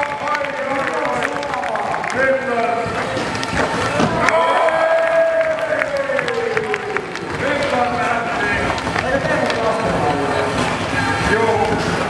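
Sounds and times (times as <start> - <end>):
crowd noise in a hall: 0.0 - 12.0
skateboard wheels clicking: 5.2 - 12.0.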